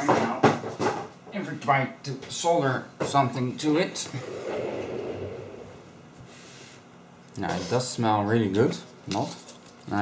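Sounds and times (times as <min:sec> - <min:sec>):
person exhaling noisily: 0:04.1 - 0:06.8.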